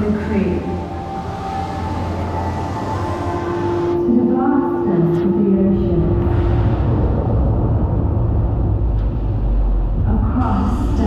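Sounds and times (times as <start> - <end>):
deep steady rumble over loudspeakers: 0.0 - 11.0.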